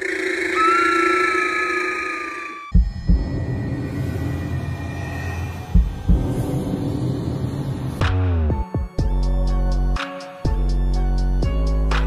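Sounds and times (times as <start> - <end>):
higher tone sagging in pitch: 0.0 - 6.1
sustained electronic drone: 0.0 - 8.5.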